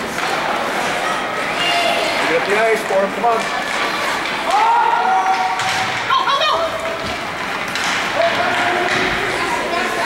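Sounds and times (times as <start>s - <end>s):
ice rink crowd noise: 0.0s - 10.0s.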